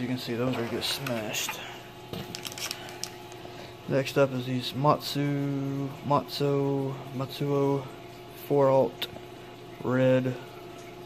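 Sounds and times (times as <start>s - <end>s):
packages rustling: 0.6s - 3.4s.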